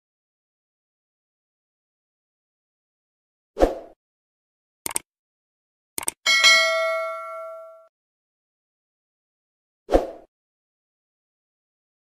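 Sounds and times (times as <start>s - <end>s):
quick clicks: 4.8s - 5.1s, 6.0s - 6.2s
bell ding: 6.3s - 7.9s.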